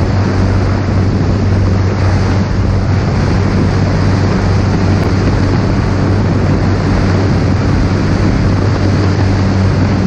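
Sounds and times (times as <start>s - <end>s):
light aircraft engine drone: 0.0s - 10.0s
rushing air: 0.0s - 10.0s.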